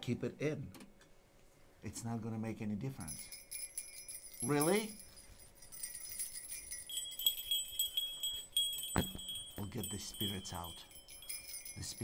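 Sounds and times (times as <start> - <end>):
small bells shaken and tinkling: 3.0 - 12.0.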